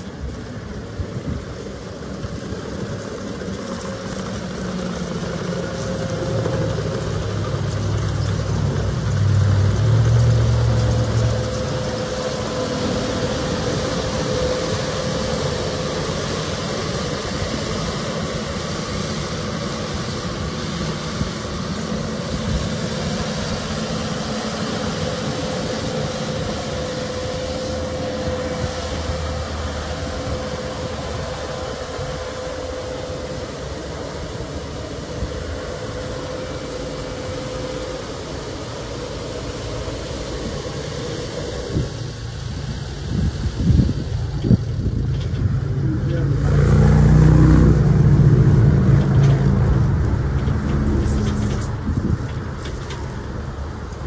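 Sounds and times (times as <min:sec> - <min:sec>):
machine moving across gravel: 0:00.0 - 0:42.0, 0:48.7 - 0:54.0
diesel engine running: 0:00.0 - 0:54.0.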